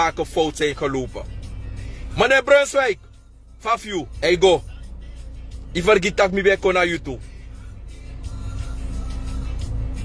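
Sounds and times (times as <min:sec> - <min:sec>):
faint background music: 0:00.0 - 0:10.0
vehicle rumble inside car: 0:00.0 - 0:10.0.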